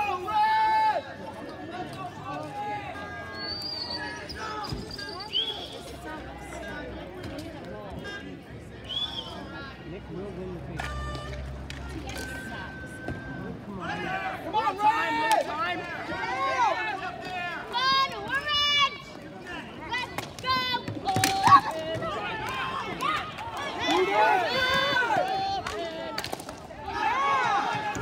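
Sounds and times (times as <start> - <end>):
voices shouting excitedly: 12.7 - 28.0
hockey sticks clacking ball: 20.0 - 26.8.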